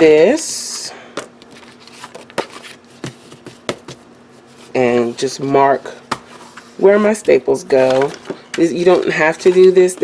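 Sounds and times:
paper rustling: 1.4s - 3.8s.

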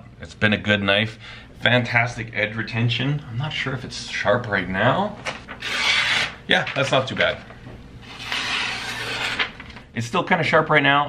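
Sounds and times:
knife slicing paper: 5.5s - 6.4s, 8.0s - 9.6s.

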